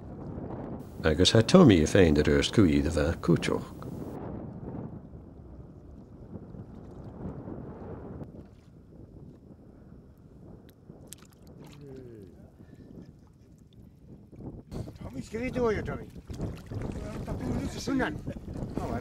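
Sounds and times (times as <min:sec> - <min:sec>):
wind rumbling on microphone: 0:00.0 - 0:19.0
light water splashes: 0:10.6 - 0:12.4, 0:14.8 - 0:18.8.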